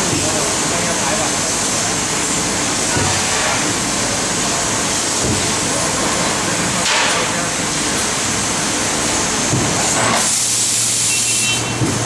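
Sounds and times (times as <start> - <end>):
laser cutter cutting metal: 9.9 - 12.0.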